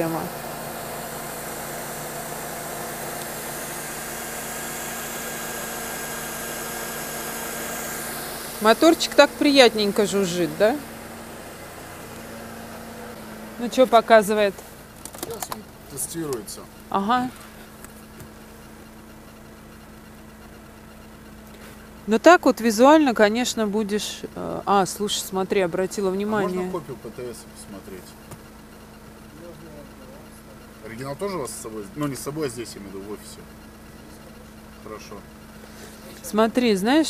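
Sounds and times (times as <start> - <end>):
car engine idling: 0.0 - 37.0.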